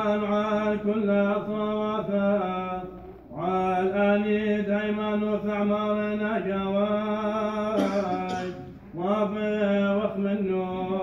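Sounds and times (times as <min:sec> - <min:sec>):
man chanting prayer: 0:00.0 - 0:11.0.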